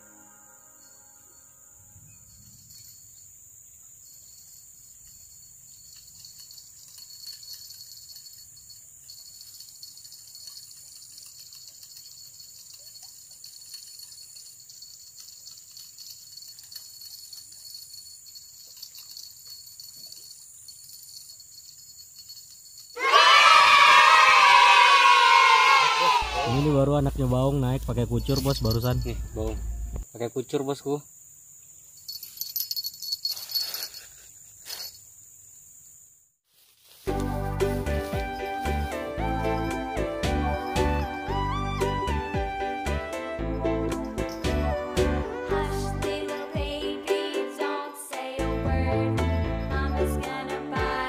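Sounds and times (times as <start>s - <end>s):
insects chirring: 0.0s - 48.3s
loud wavering vocal cry: 23.0s - 26.6s.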